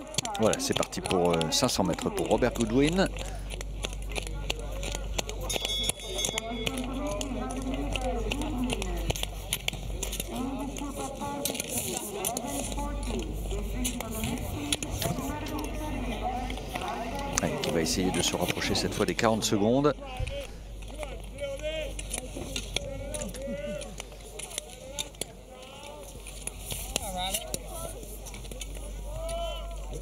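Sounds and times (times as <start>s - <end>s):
steady ambient hum: 0.0s - 30.0s
voices talking in background: 0.0s - 30.0s.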